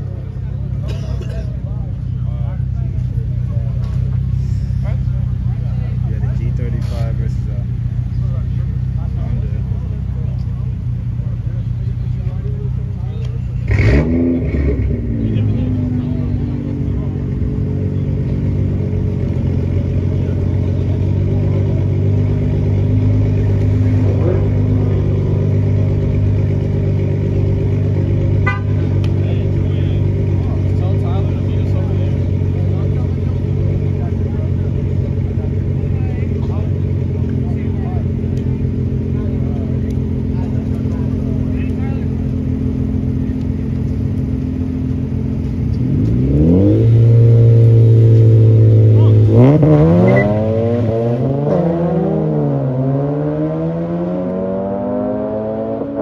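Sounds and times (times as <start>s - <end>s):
car engines idling: 0.0s - 56.0s
cars accelerating away: 13.5s - 56.0s
engine revving: 13.6s - 17.8s, 44.8s - 56.0s.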